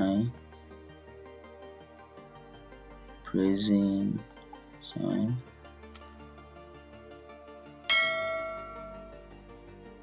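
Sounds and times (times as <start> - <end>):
quiet background music: 0.0 - 10.0
bright bell-like chime: 7.9 - 9.2.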